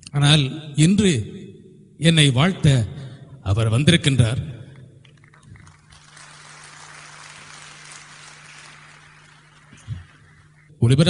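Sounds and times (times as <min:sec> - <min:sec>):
audience applause: 0:05.1 - 0:10.7
steady low hum: 0:05.1 - 0:11.0.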